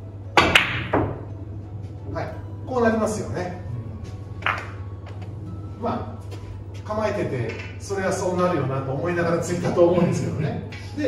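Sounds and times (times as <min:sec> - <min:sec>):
billiard balls clicking: 0:00.3 - 0:01.3, 0:04.4 - 0:05.4
cue tip striking ball click: 0:00.3 - 0:01.3, 0:04.4 - 0:05.3.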